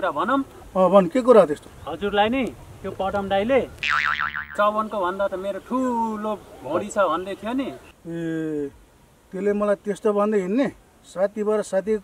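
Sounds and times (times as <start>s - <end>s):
comic boing sound effect: 3.8s - 4.7s.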